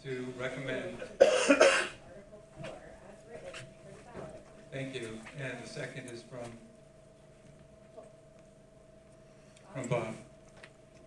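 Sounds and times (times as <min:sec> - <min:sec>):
person coughing: 0:01.2 - 0:02.0.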